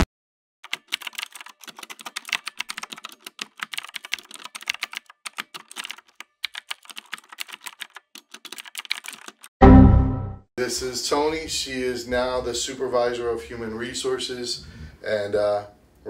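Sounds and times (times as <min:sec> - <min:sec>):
keyboard typing: 0:00.6 - 0:09.5.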